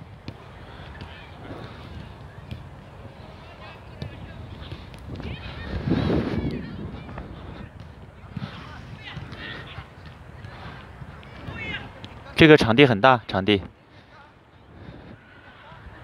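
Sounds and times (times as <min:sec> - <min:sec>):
ball kick thuds: 0:03.9 - 0:12.2.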